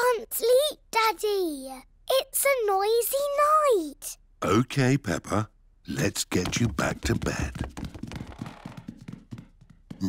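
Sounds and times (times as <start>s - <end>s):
cartoon footsteps climbing stairs: 5.9s - 10.0s.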